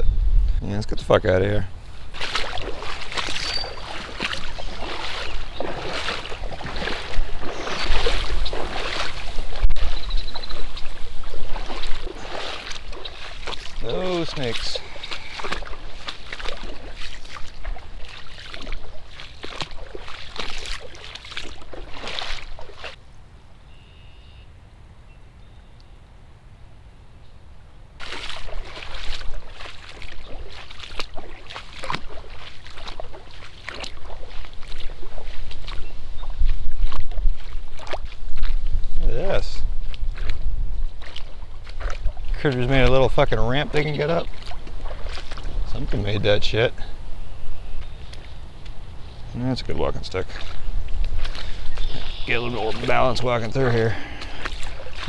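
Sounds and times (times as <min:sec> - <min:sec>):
low rumble on microphone: 0:00.0 - 0:03.1
legs sloshing through water: 0:01.8 - 0:23.0, 0:28.0 - 0:55.0.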